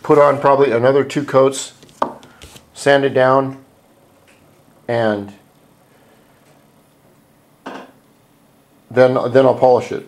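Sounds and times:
noisy intake of breath: 5.8 - 6.6.

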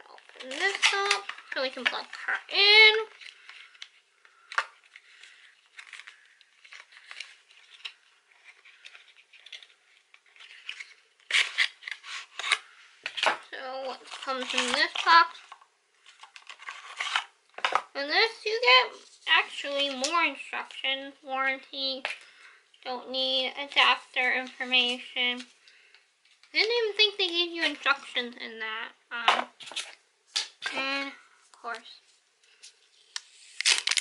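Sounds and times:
paper packaging tearing: 0.1 - 13.3, 13.9 - 15.5, 16.1 - 17.3, 33.2 - 34.0.

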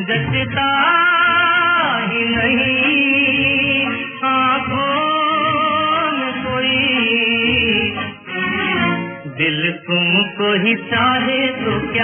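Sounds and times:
instrumental accompaniment: 0.0 - 12.0
person singing: 0.0 - 12.0.

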